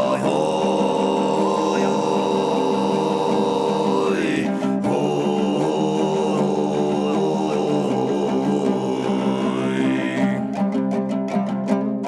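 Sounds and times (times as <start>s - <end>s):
throat singing drone: 0.0s - 10.6s
plucked lutes: 0.0s - 12.0s.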